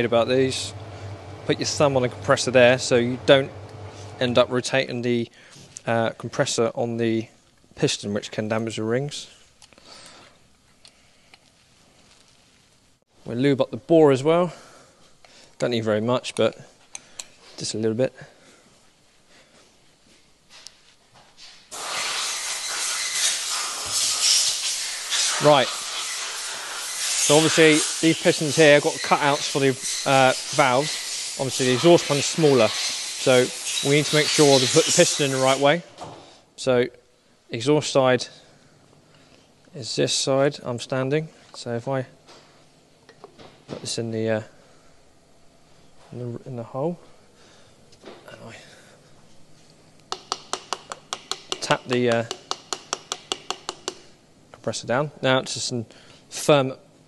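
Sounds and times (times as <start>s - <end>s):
loud steady hiss: 0.0s - 5.2s, 21.7s - 36.0s
sharp metallic taps: 50.1s - 54.1s.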